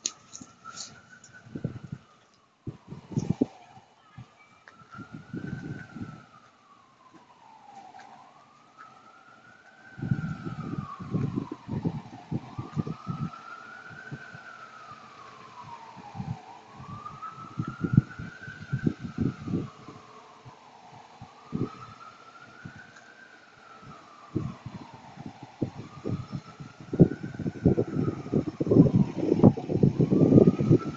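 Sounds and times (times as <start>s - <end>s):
emergency vehicle siren wailing: 0.0s - 30.9s.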